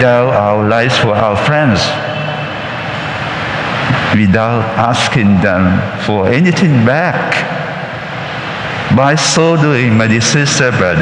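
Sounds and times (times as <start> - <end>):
whooshing room noise: 0.0 - 11.0.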